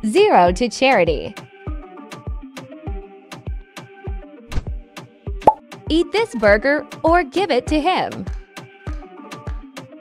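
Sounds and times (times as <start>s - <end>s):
background music with kick drum: 0.0s - 10.0s.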